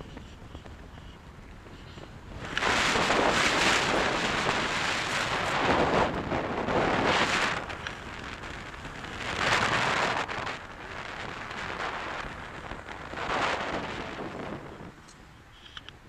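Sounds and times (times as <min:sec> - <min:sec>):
road noise: 0:00.0 - 0:16.0
wind rushing over camera: 0:00.0 - 0:16.0.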